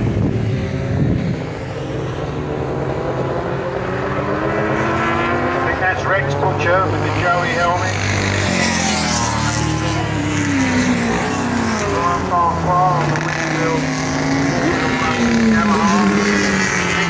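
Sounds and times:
racing motorcycle engines passing: 0.0s - 17.0s
crowd voices: 5.6s - 17.0s.

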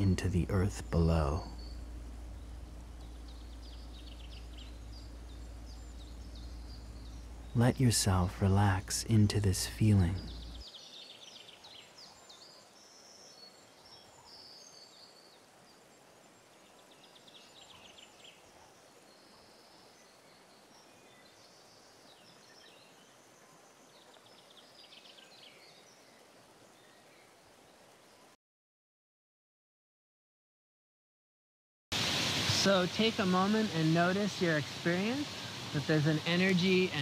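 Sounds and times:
birds chirping and trilling: 0.0s - 28.3s, 32.6s - 37.0s
low outdoor hiss: 0.0s - 28.4s, 32.0s - 37.0s.

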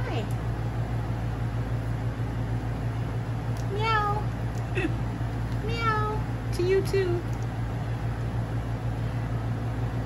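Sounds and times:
kitten meowing: 3.7s - 4.2s, 5.6s - 6.2s.

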